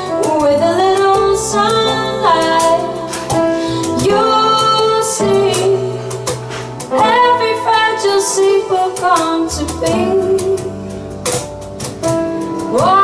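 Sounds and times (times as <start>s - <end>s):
woman singing into microphone: 0.0s - 10.8s, 12.6s - 13.0s
instrumental accompaniment: 0.0s - 13.0s.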